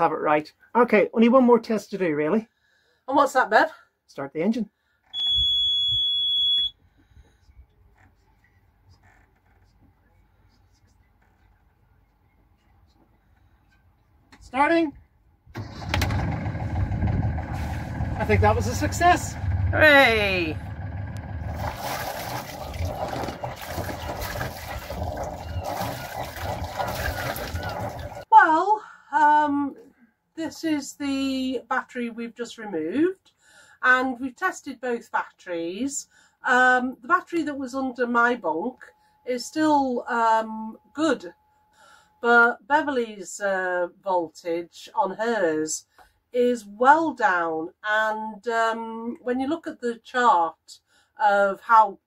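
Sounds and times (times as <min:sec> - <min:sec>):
high-pitched warning buzzer beep: 0:05.2 - 0:06.8
woman's voice: 0:14.4 - 0:15.0, 0:18.2 - 0:20.7, 0:28.3 - 0:33.2, 0:33.8 - 0:41.4, 0:42.2 - 0:45.8, 0:46.4 - 0:52.0
diesel engine idling: 0:15.6 - 0:22.0
exhaust water gushing: 0:15.7 - 0:19.8, 0:20.5 - 0:28.2.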